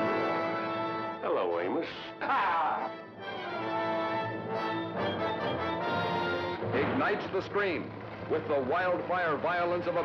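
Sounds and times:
orchestral brass chords: 0:00.0 - 0:01.3, 0:02.8 - 0:07.0.

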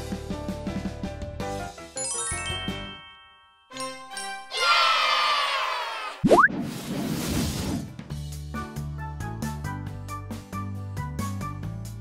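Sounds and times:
children's background music: 0:00.0 - 0:05.7, 0:08.1 - 0:12.0.

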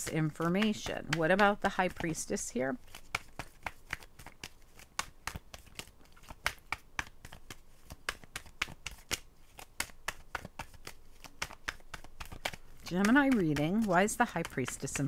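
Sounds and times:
cards being shuffled: 0:00.3 - 0:15.0.

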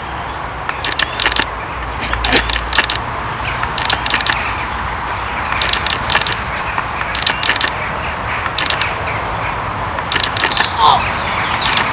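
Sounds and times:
parakeets chattering: 0:00.6 - 0:11.9.

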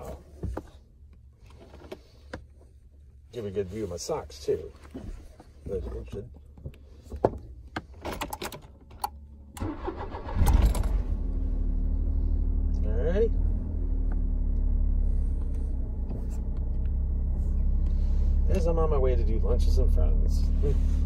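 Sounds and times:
car engine cranking and idling: 0:00.0 - 0:21.0.

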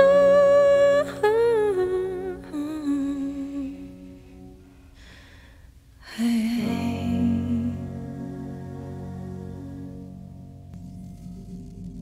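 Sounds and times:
soft low sustained accompaniment: 0:00.0 - 0:12.0.

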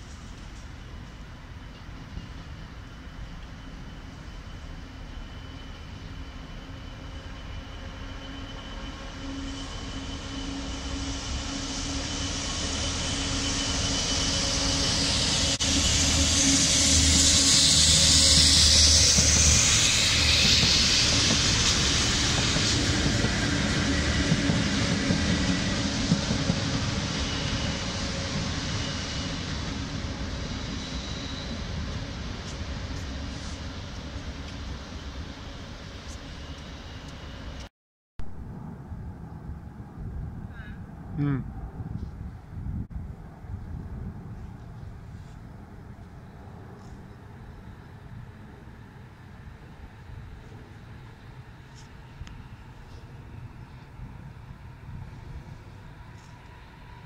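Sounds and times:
diesel locomotive engine running: 0:00.0 - 0:37.7.

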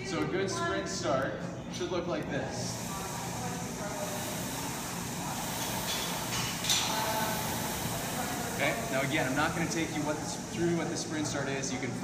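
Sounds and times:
rowing machine flywheel whirring: 0:01.8 - 0:12.0.

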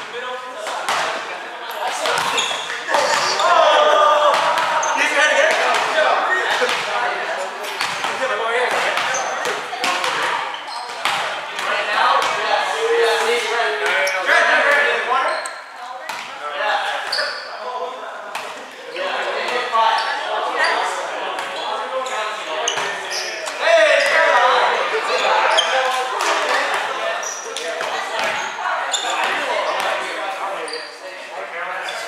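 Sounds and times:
volleyball smacks echoing: 0:00.6 - 0:03.5, 0:04.2 - 0:12.5
players shouting: 0:01.8 - 0:15.3, 0:18.9 - 0:30.2.

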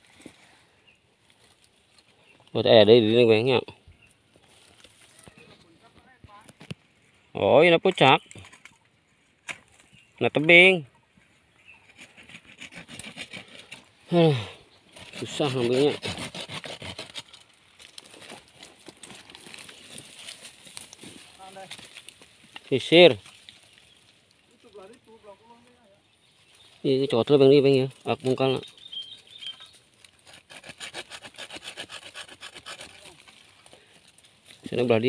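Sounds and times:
hand saw cutting wood: 0:11.8 - 0:14.2, 0:14.9 - 0:17.5, 0:30.0 - 0:33.5
pruning saw cutting roots: 0:11.8 - 0:23.7, 0:27.2 - 0:35.0.

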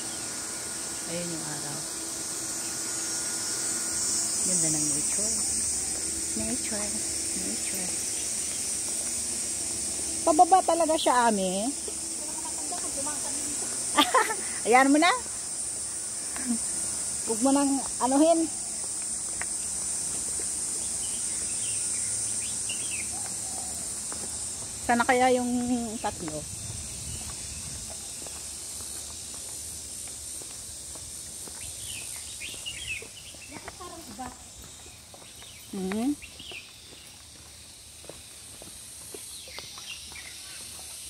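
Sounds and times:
high-pitched hiss: 0:00.0 - 0:41.0
insects buzzing: 0:00.0 - 0:41.0.

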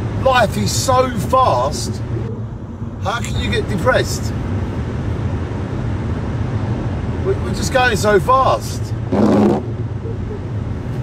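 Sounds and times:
car engine and tyre drone: 0:00.0 - 0:11.0.

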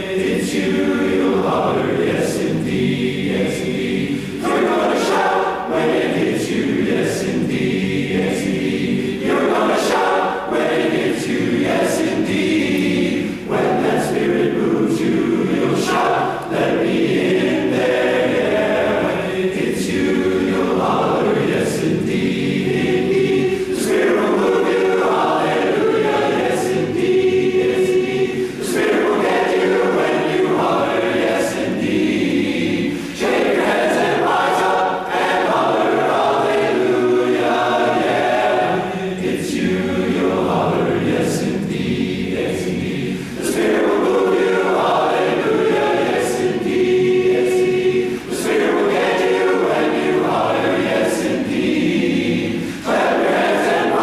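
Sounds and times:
chorus singing in harmony: 0:00.0 - 0:54.0.

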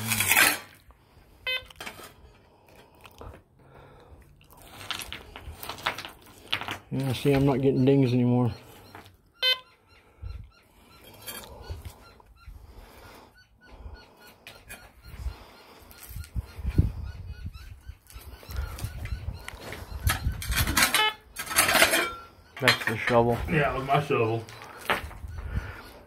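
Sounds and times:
shovel scraping gravelly soil: 0:00.0 - 0:00.8.

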